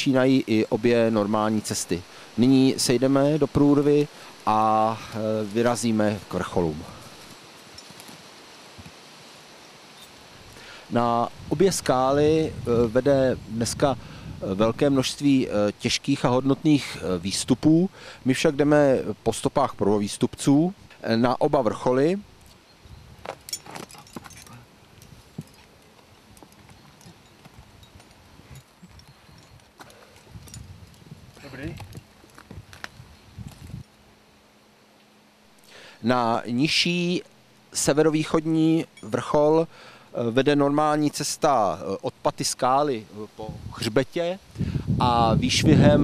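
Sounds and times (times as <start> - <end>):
steady soft hiss: 0.0 - 46.0
carabiners clinking: 23.3 - 32.4, 38.8 - 39.3.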